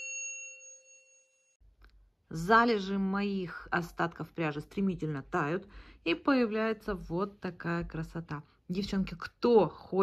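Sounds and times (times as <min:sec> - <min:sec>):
bell-like chime ringing: 0:00.0 - 0:01.6.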